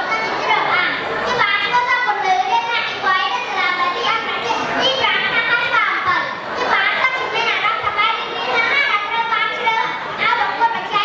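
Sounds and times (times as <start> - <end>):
boy speaking into a microphone: 0.0 - 11.0.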